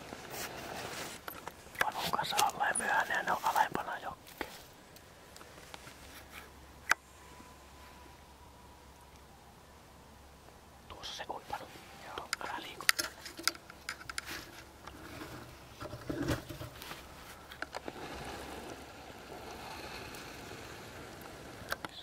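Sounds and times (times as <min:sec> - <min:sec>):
sharp clicks and scrapes: 0:11.5 - 0:18.8.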